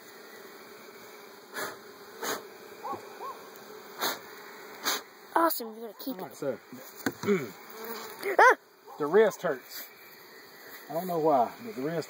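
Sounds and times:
honeybees buzzing: 0.0s - 12.0s.

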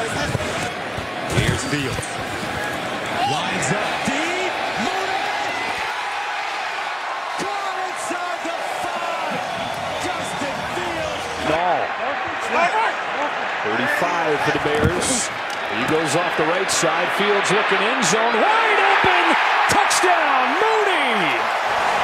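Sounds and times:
stadium crowd noise: 0.0s - 22.0s
commentators talking: 3.1s - 5.7s, 10.0s - 21.5s.

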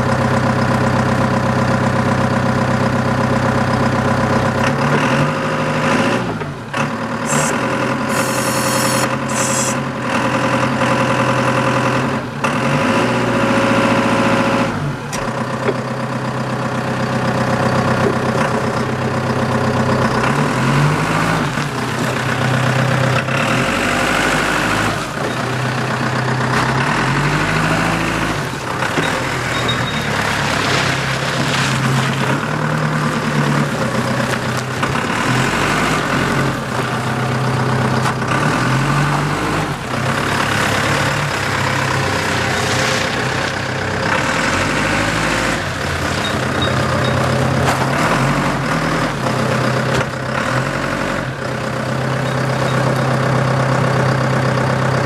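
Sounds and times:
forklift engine revving: 0.0s - 55.0s.

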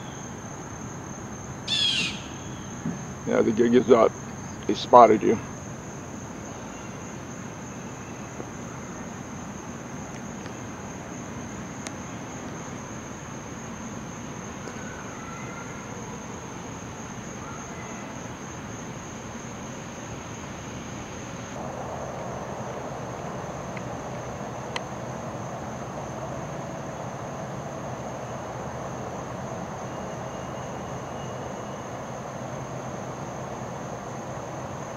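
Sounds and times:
background hiss: 0.0s - 34.9s
crickets chirping: 0.0s - 34.9s.

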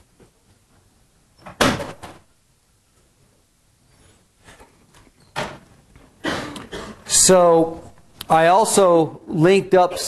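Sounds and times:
loud knock with rattle: 1.5s - 2.2s.

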